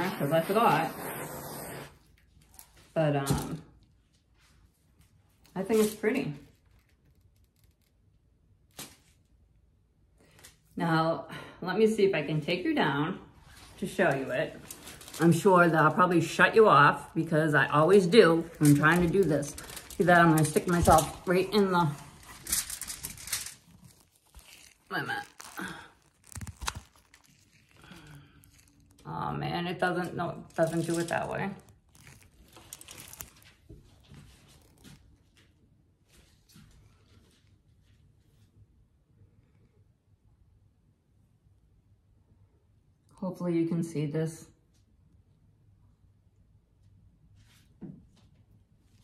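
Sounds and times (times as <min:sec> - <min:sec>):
clothing rubbing on microphone: 0:00.0 - 0:02.0.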